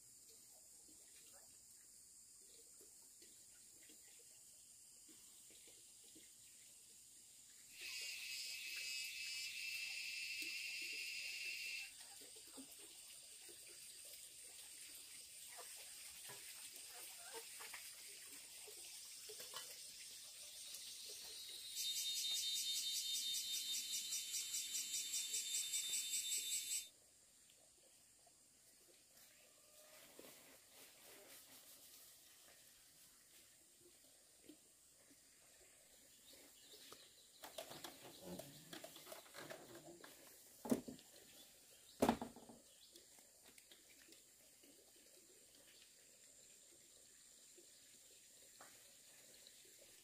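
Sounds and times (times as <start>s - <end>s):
insects singing in a high drone: 7.7s - 12.0s, 19.0s - 26.9s.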